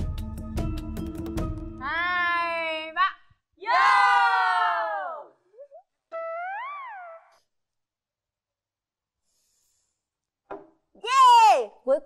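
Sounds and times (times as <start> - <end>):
people shouting a toast together: 3.6 - 5.3.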